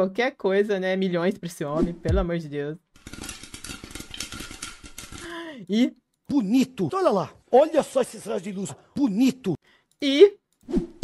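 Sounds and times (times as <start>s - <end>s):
popcorn popping: 3.0s - 5.3s.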